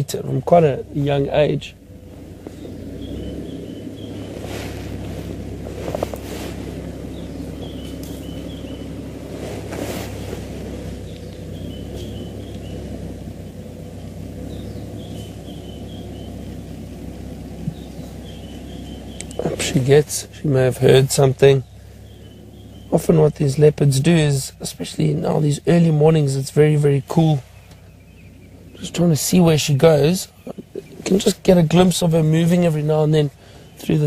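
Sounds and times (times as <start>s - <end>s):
bird chirping: 0.0s - 34.0s
vehicle engine idling: 0.0s - 34.0s.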